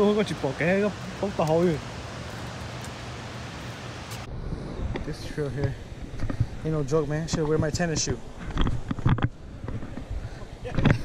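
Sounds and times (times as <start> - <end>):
steady rushing outdoor noise: 0.0 - 11.0
low rumble: 4.2 - 6.6.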